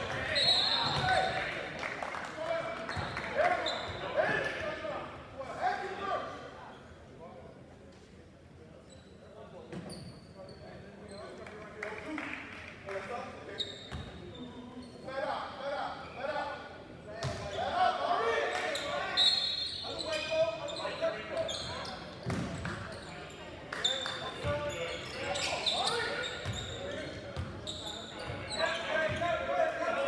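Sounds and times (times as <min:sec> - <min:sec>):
sneaker squeaks: 0:00.2 - 0:01.4, 0:02.9 - 0:04.4, 0:08.8 - 0:11.4, 0:13.5 - 0:15.1, 0:18.8 - 0:29.4.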